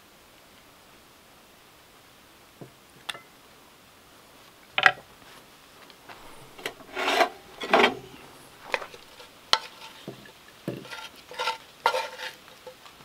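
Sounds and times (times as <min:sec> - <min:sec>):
wooden spatula scraping skillet: 0:06.1 - 0:12.9
pan clinking against plate: 0:06.2 - 0:10.0, 0:10.8 - 0:12.4.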